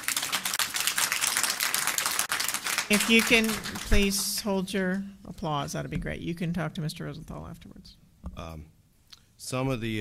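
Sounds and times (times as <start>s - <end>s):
audience applause: 0.0s - 4.1s.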